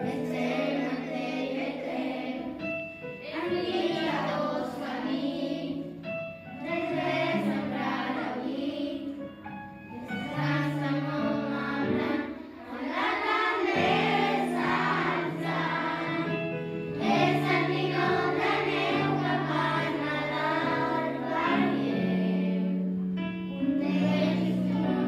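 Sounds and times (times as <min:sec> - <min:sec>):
children singing a carol: 0:00.0 - 0:06.0, 0:06.6 - 0:09.3, 0:09.9 - 0:22.9, 0:23.8 - 0:25.0.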